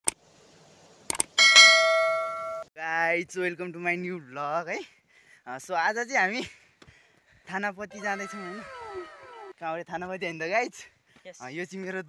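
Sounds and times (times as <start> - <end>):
sharp click: 1.1 - 1.4
notification bell ding: 1.4 - 2.6.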